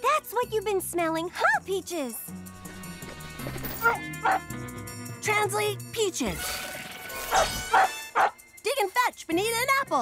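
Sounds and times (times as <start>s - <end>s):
light background music: 0.0s - 10.0s
cartoon dog barking: 3.8s - 4.4s, 7.3s - 8.4s.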